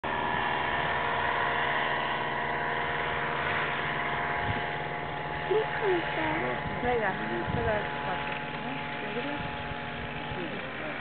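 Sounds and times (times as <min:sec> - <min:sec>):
paramotor engine buzzing: 0:00.0 - 0:11.0.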